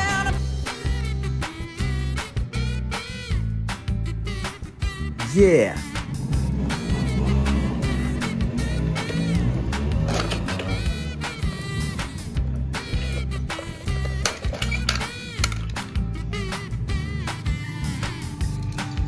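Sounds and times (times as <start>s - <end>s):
background music with bass beat: 0.0s - 19.0s.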